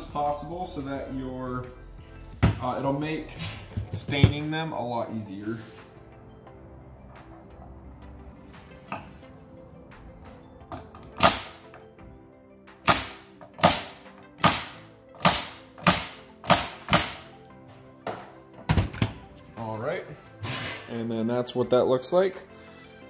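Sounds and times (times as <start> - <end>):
nail gun firing into wood: 11.2 - 11.6, 12.8 - 17.3.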